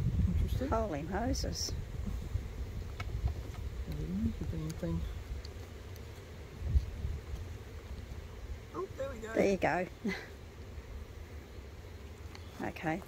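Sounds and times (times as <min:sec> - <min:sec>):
low wind rumble: 0:00.0 - 0:12.2
bees buzzing: 0:00.4 - 0:13.0.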